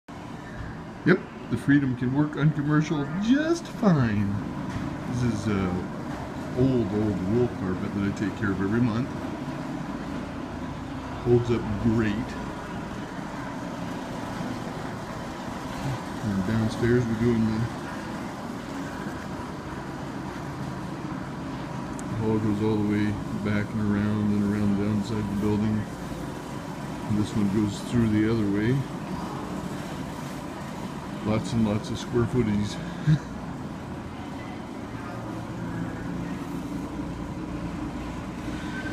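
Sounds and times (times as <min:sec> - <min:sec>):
carpet cleaning machine drone: 0:00.1 - 0:38.9
faint high whine: 0:00.1 - 0:38.9.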